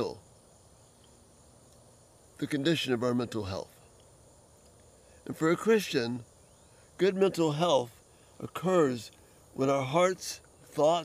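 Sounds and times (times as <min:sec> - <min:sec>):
person speaking: 0:00.0 - 0:00.2, 0:02.4 - 0:03.8, 0:05.2 - 0:06.2, 0:07.0 - 0:11.0
crickets chirping: 0:00.0 - 0:11.0.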